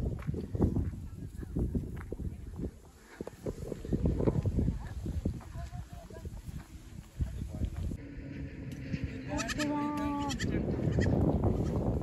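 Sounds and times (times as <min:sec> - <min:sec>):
goat kid bleating: 0:09.3 - 0:11.7.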